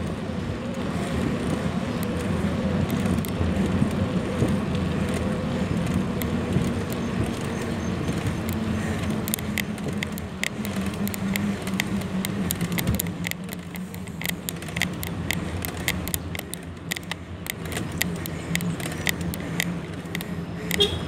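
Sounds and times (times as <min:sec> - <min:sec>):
road and wind rumble: 0:00.0 - 0:21.0
sharp clicks or rattles: 0:01.0 - 0:21.0.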